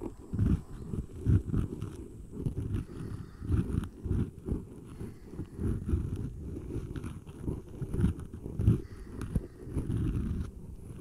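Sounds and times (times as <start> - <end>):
muffled rubbing on microphone: 0.0 - 11.0.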